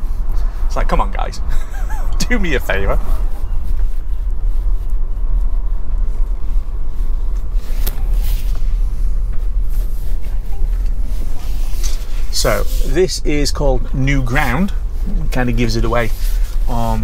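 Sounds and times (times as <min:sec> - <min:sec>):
tyre and road rumble: 0:00.0 - 0:17.0.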